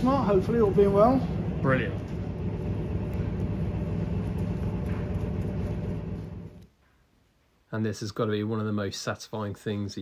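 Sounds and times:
low mechanical rumble: 0:00.0 - 0:06.7.

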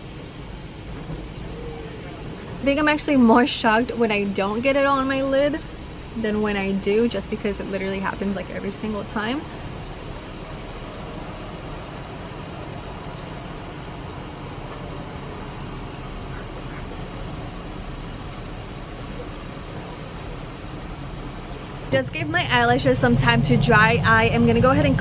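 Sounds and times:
outdoor background hiss: 0:00.0 - 0:25.0.

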